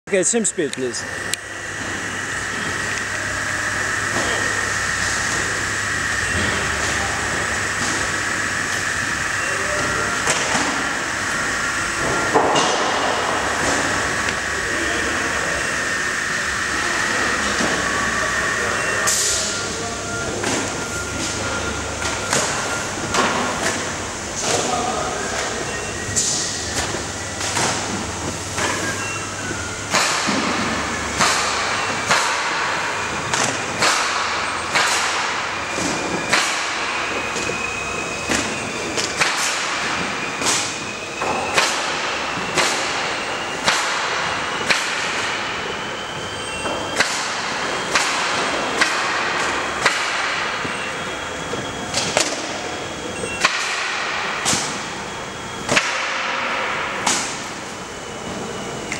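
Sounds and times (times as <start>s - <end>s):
warehouse working noise: 0.0s - 58.9s
sharp knocks and bangs: 29.9s - 37.5s.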